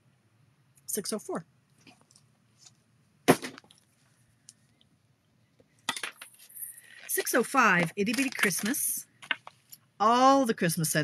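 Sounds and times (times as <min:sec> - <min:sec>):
plastic cases clicking and scraping: 0:05.9 - 0:09.8.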